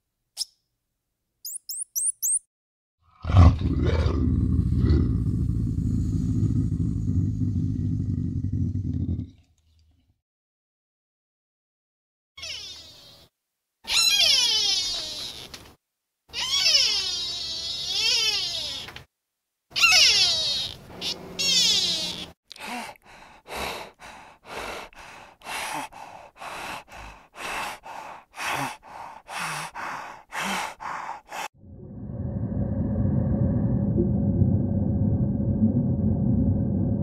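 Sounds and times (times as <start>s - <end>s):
deer high-pitched calls: 19.7s - 22.3s.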